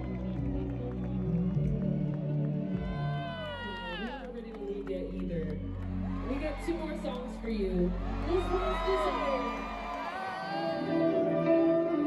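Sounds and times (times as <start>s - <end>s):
faint crowd noise: 0.0s - 12.0s
faint music: 0.0s - 12.0s.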